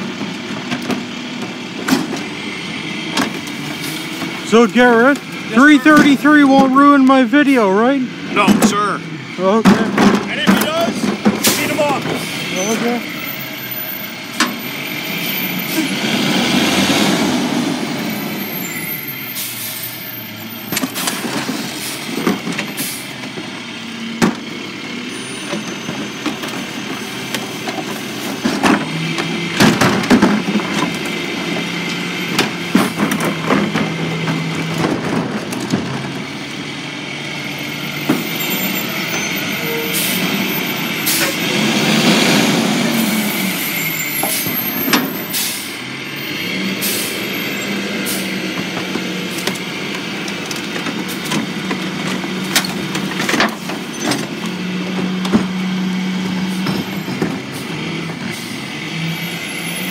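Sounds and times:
garbage truck engine running: 0:00.0 - 0:59.9
carts banging against hopper: 0:03.1 - 0:07.0, 0:09.5 - 0:13.0, 0:25.3 - 0:36.3, 0:47.9 - 0:58.4.

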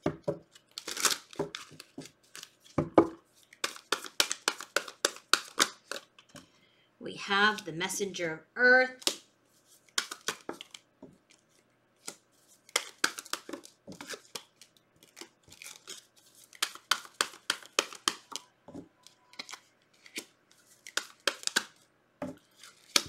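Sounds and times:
cards shuffled and laid down: 0:00.0 - 0:06.5, 0:09.0 - 0:23.0.

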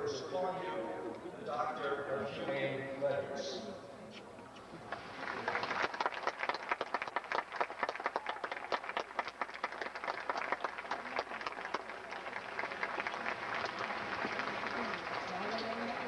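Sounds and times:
audience applauding: 0:04.8 - 0:16.0.

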